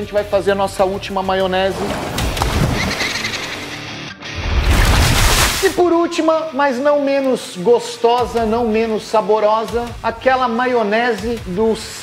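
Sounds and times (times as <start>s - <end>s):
noisy bass whoosh: 4.3s - 5.8s.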